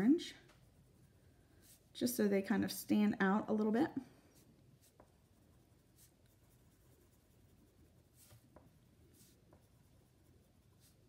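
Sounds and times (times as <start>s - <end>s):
colouring tool scratching paper: 4.4s - 11.0s.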